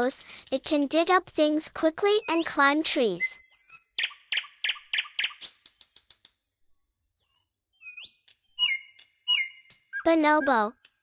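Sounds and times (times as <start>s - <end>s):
high bird-like chirps: 2.2s - 5.9s, 7.2s - 10.8s.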